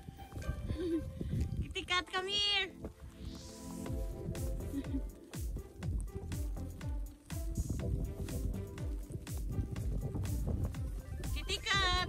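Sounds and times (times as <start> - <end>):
low bumps: 0.0 - 12.0.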